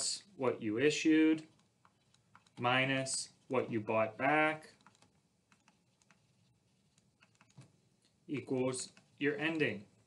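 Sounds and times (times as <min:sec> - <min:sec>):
stylus tapping on tablet screen: 0:04.8 - 0:07.8.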